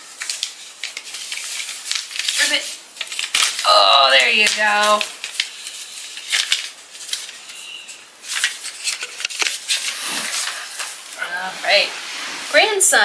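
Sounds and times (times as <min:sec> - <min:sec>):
paper rustling and crinkling: 0:00.0 - 0:12.8.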